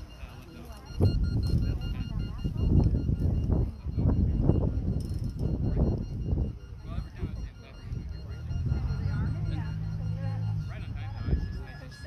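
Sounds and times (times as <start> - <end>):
distant voices talking: 0.0 - 12.0.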